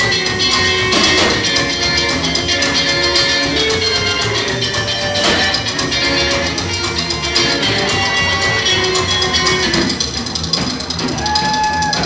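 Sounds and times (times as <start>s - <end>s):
drum kit beat: 0.0s - 12.0s
live band music: 0.0s - 12.0s
upright double bass: 0.0s - 12.0s.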